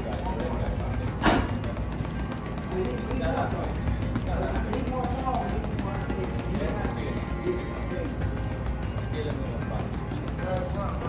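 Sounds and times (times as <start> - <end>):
background music: 0.0 - 11.0
gloves thudding on heavy bag: 1.1 - 2.7.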